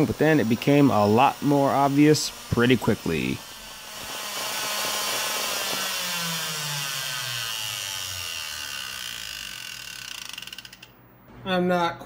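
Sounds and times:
router motor cutting wood: 0:00.0 - 0:10.9.

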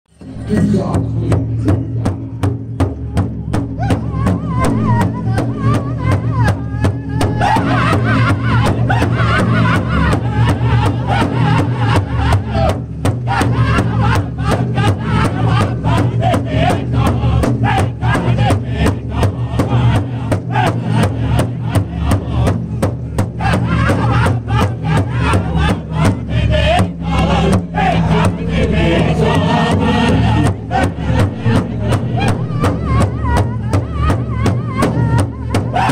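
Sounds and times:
large hide drum beating: 0:00.2 - 0:35.9
voices singing together: 0:03.8 - 0:35.9.

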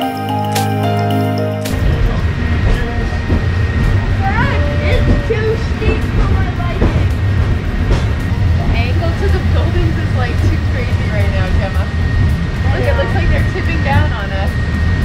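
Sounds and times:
indistinct passenger voices: 0:01.7 - 0:15.0
tram rumbling on rails: 0:01.7 - 0:15.0.

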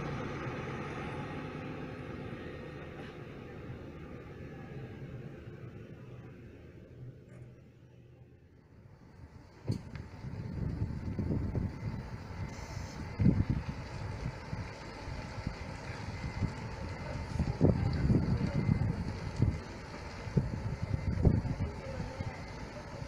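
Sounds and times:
coach diesel engine running: 0:00.0 - 0:23.0
wind buffeting microphone: 0:09.7 - 0:23.0.

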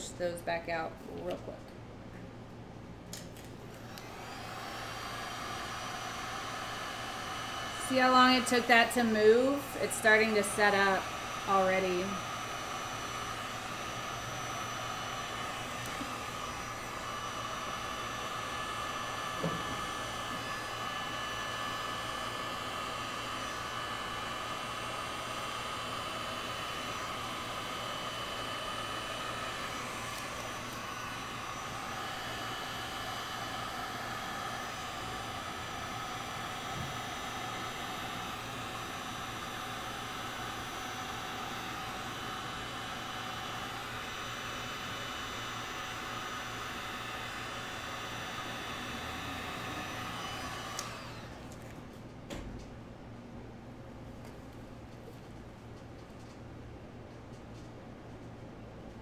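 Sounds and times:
heat gun fan whining: 0:00.0 - 0:59.0.

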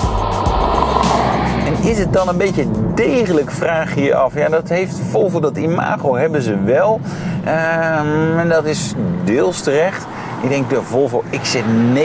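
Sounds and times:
background music with low beat: 0:00.0 - 0:04.6
car passing: 0:00.0 - 0:06.0, 0:06.6 - 0:12.0.

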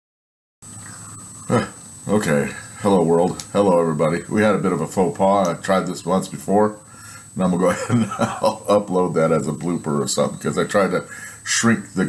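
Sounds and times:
low room hum: 0:00.6 - 0:12.0
thin high whine: 0:00.6 - 0:12.0.

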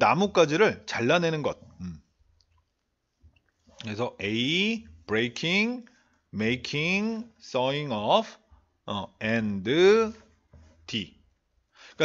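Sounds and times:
man speaking: 0:00.0 - 0:02.2, 0:03.7 - 0:11.3.

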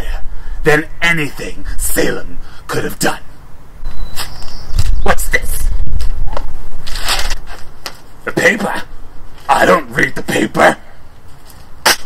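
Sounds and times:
newspaper rustling: 0:06.8 - 0:08.1.

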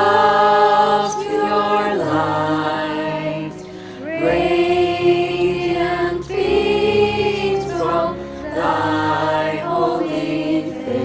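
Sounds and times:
youth choir singing: 0:00.0 - 0:11.0.

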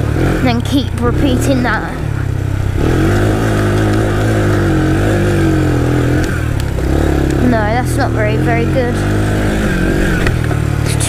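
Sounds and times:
quad bike engine running: 0:00.0 - 0:11.0.

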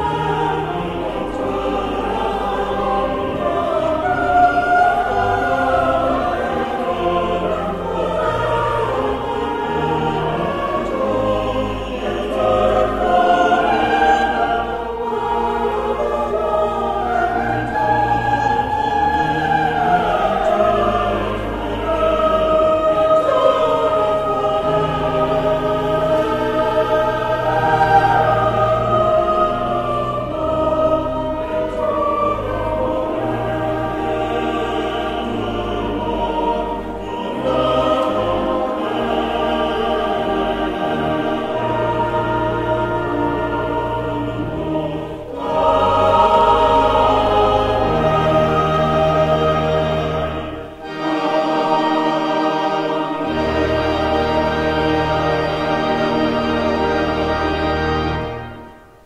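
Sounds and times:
choir singing: 0:00.0 - 0:59.0
pipe organ: 0:00.0 - 0:59.0.

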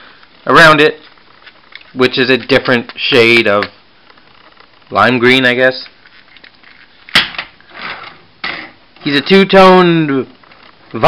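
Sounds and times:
toy handling noise: 0:01.0 - 0:04.9, 0:05.7 - 0:08.8.

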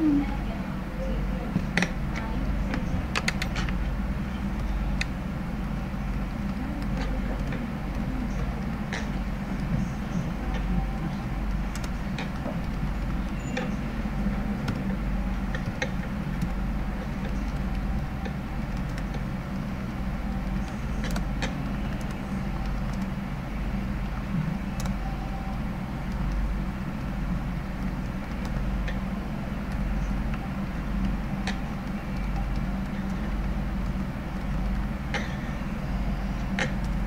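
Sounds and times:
steady low hum and rumble: 0:00.0 - 0:37.0
faint scattered clicks: 0:01.5 - 0:37.0.

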